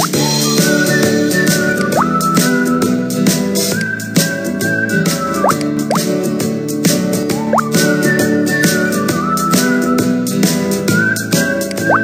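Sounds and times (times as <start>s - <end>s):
cheerful cartoon music: 0.0s - 12.0s.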